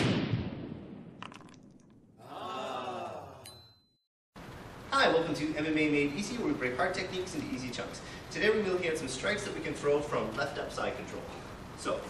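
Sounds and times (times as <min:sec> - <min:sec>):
stone crashing down: 0:01.1 - 0:02.0
small clicks of falling rubble: 0:01.2 - 0:02.0.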